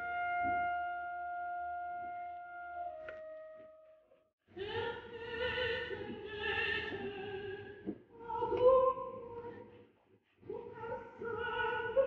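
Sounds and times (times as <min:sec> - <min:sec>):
operatic singing: 0:04.6 - 0:09.8, 0:10.4 - 0:12.0.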